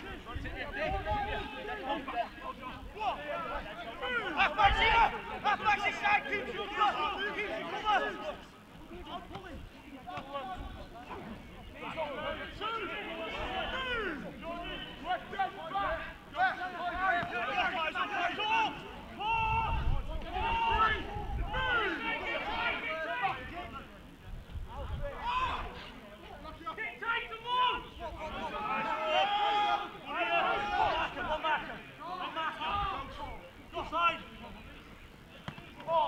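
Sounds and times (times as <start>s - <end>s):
people shouting to one another: 0.0s - 8.4s, 11.8s - 23.7s, 24.7s - 25.9s, 26.7s - 34.1s.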